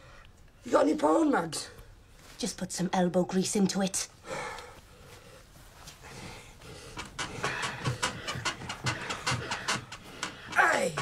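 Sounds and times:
man breathing heavily: 0:04.2 - 0:11.0.

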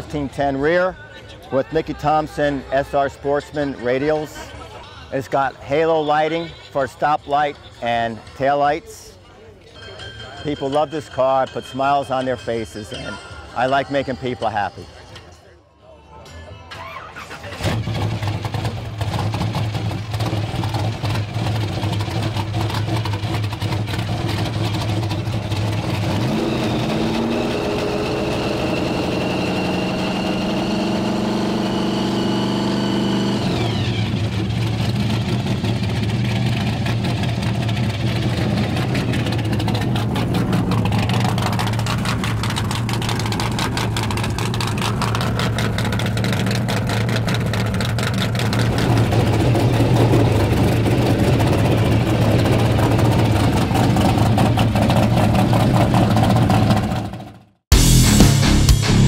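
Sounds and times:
car engine idling and revving: 0:17.2 - 0:59.0
supercharger whine: 0:17.6 - 0:57.2.

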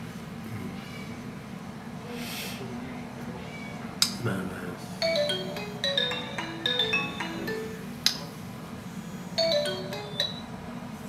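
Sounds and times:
electronic chime melody: 0:05.0 - 0:08.0, 0:09.4 - 0:10.6.

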